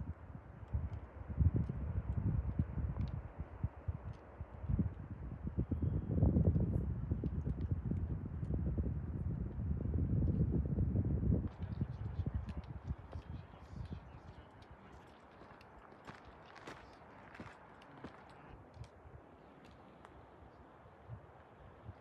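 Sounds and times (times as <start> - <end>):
wind buffeting microphone: 0.0 - 22.0
footsteps crunching on rocky trail: 11.5 - 19.0.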